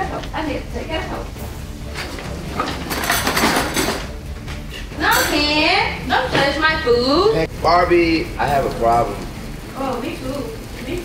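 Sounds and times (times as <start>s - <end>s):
frying pan and utensils clattering: 1.7s - 6.7s.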